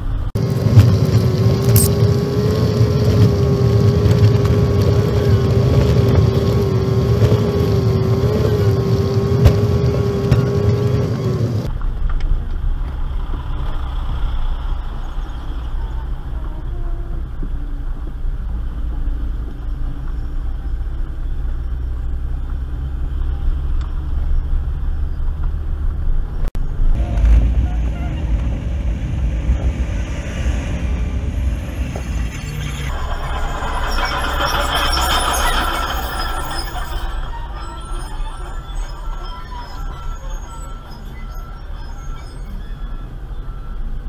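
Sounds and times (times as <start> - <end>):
car engine rumble: 0.0 - 44.0.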